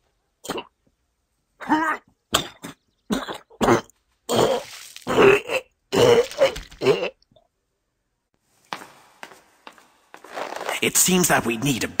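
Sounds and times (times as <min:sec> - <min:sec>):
man coughing and choking: 0:00.4 - 0:00.7, 0:01.6 - 0:07.2.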